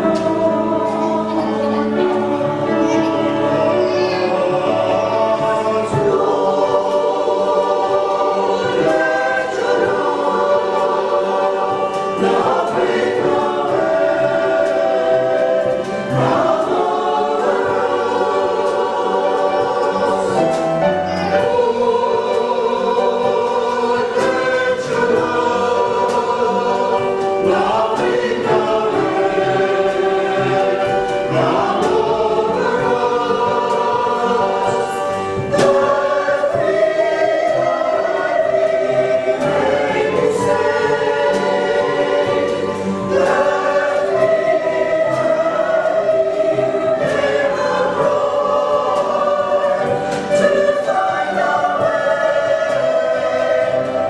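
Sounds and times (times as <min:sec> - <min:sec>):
mixed choir singing slowly: 0:00.0 - 0:54.0.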